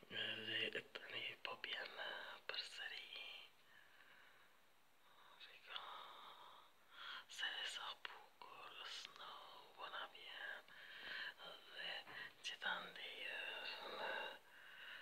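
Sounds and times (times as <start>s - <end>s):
person whispering softly: 0.0s - 3.8s, 5.0s - 15.0s.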